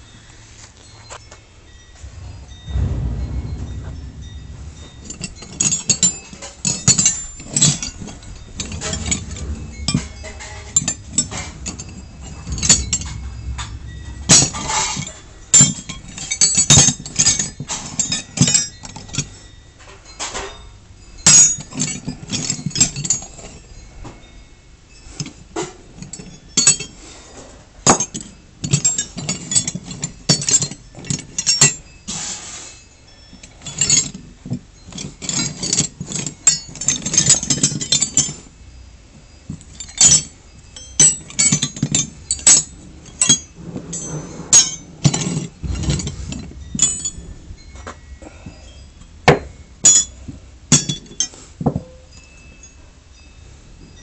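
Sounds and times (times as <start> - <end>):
low rumble: 1.9 - 17.8, 40.8 - 44.1, 45.5 - 50.8
metal wrenches clanking together: 39.5 - 47.3.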